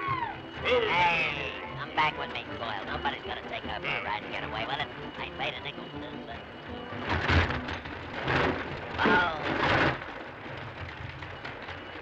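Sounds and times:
roller coaster cars rattling: 0:00.0 - 0:12.0.

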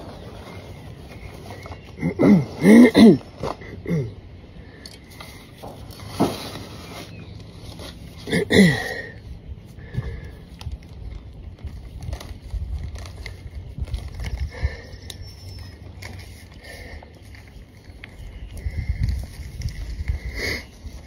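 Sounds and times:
leaves rustling: 0:00.0 - 0:04.0, 0:04.6 - 0:21.0
soil crackling: 0:00.0 - 0:21.0.

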